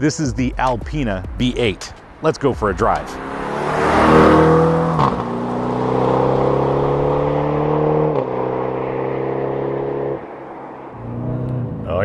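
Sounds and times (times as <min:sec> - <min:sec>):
car engine accelerating hard: 0:02.6 - 0:12.0.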